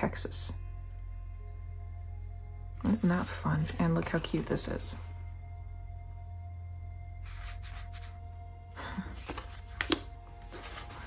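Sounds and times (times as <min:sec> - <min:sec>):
faint background music: 0:00.0 - 0:11.0
paper rustling: 0:07.2 - 0:08.2, 0:09.1 - 0:11.0.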